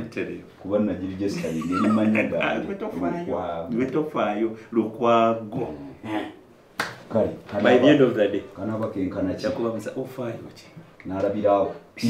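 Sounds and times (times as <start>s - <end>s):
man laughing: 1.3s - 2.8s
hand slap: 6.8s - 7.0s.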